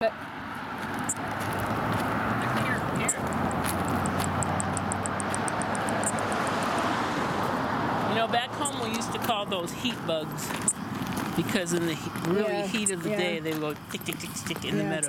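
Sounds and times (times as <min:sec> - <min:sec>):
katydid ticking call: 0:02.6 - 0:06.5, 0:08.6 - 0:09.3, 0:10.3 - 0:10.9, 0:11.6 - 0:15.0.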